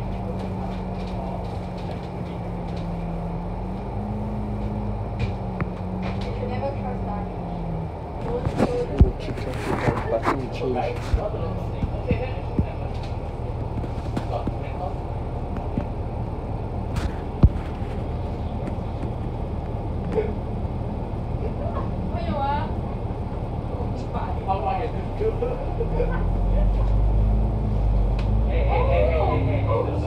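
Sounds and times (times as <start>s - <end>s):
bus diesel engine idling: 0.0s - 30.0s.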